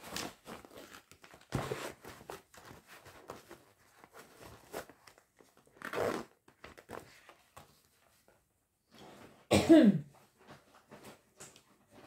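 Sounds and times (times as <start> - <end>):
woman coughing: 9.5 - 10.1.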